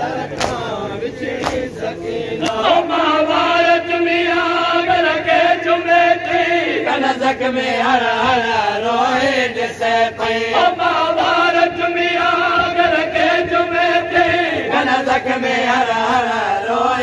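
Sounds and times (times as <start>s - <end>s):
men chanting together: 0.0s - 17.0s
hands beating chests: 0.3s - 0.8s, 1.4s - 1.7s.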